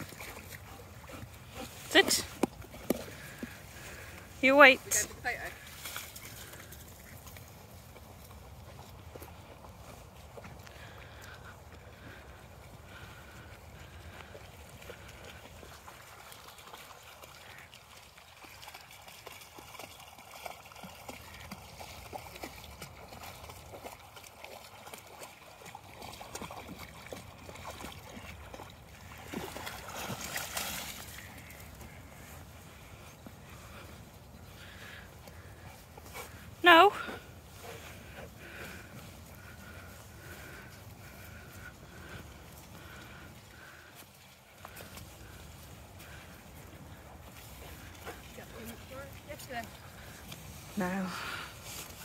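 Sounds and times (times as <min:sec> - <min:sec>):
dog wading through water: 0:00.0 - 0:52.0.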